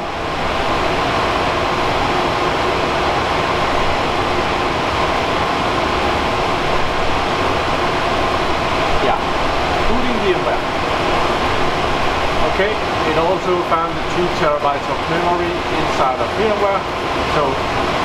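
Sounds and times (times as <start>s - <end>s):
faint steady hum: 0.0s - 18.0s
server cooling fans whirring: 0.0s - 18.0s.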